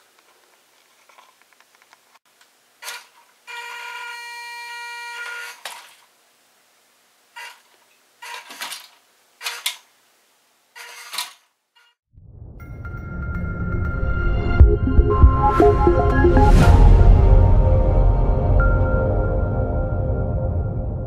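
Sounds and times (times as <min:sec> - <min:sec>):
toy truck motor whining: 0:02.8 - 0:05.7, 0:08.2 - 0:09.8, 0:10.8 - 0:12.0.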